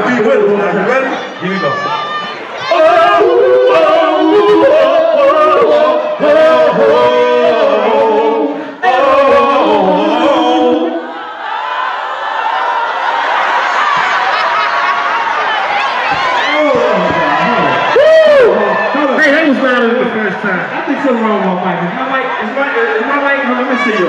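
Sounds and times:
crowd shouting and cheering: 0:00.0 - 0:24.0
men singing a cappella: 0:02.6 - 0:11.2
loud whoop: 0:11.2 - 0:19.1.

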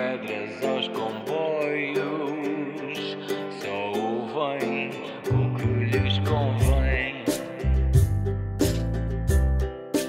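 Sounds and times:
man singing: 0:00.0 - 0:08.2
strummed acoustic guitar: 0:00.0 - 0:10.0.

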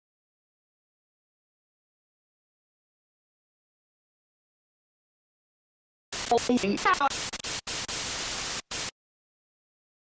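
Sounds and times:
loud static hiss: 0:06.1 - 0:09.0.

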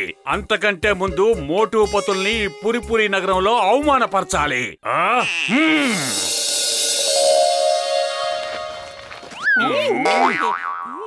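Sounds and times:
background music: 0:00.0 - 0:04.7, 0:05.9 - 0:09.4
cartoon boing: 0:05.1 - 0:06.4, 0:09.5 - 0:11.0.

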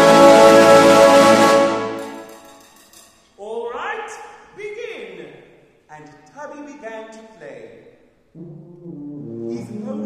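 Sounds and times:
low brass held notes: 0:00.0 - 0:02.3, 0:08.3 - 0:10.0
wind band playing: 0:00.0 - 0:02.4, 0:08.3 - 0:10.0.

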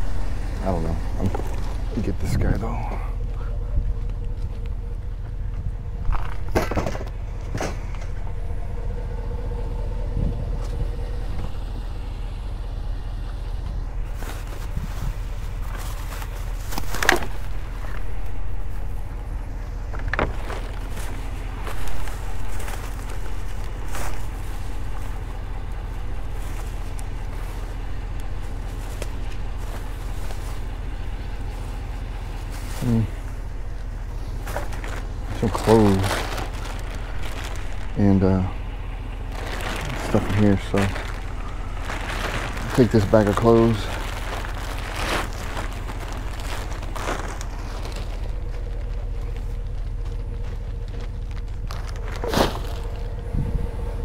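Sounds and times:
vehicle engine idling: 0:00.0 - 0:54.0
plastic bags crinkling: 0:34.3 - 0:53.3.

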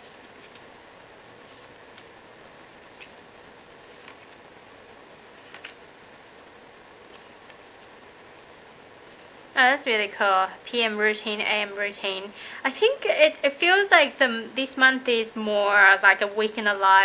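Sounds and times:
steady low hiss: 0:00.0 - 0:17.0.

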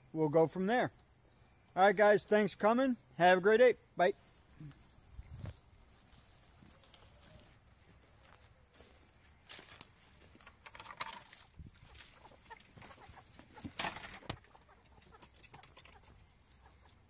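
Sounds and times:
chickens clucking: 0:11.6 - 0:17.0.

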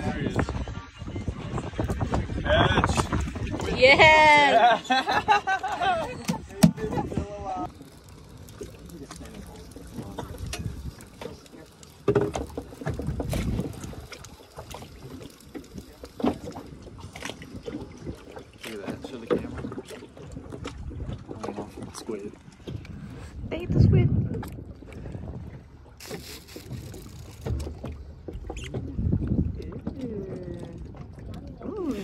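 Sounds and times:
wind and water rumble: 0:00.0 - 0:32.0
people laughing: 0:03.7 - 0:07.2.

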